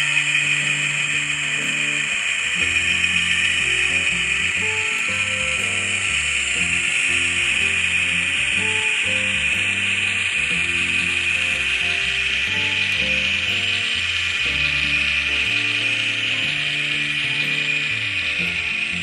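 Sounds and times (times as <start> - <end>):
background music with bass line: 0.0 - 19.0
model locomotive motor whirring: 0.0 - 19.0.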